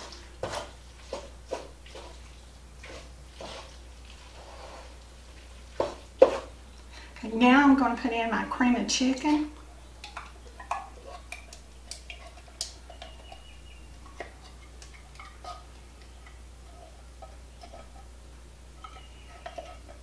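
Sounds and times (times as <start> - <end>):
spatula scraping a metal can: 18.8 - 20.0.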